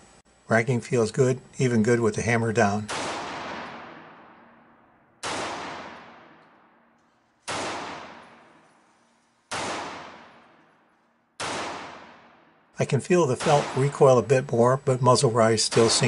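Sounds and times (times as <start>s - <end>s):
pistol shots with long echo: 2.8s - 14.3s, 15.6s - 16.0s.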